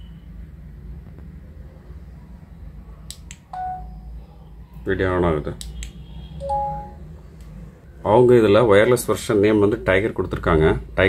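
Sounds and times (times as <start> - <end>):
short electronic beep: 6.4 - 7.0.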